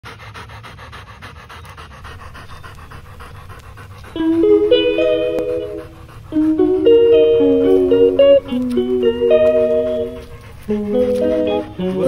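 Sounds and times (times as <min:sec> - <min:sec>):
dog panting rapidly: 0:00.0 - 0:12.0.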